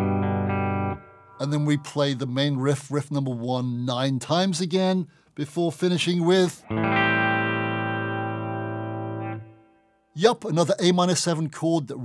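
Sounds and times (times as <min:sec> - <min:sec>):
electric guitar chord ringing: 0:00.0 - 0:02.1, 0:06.6 - 0:10.0.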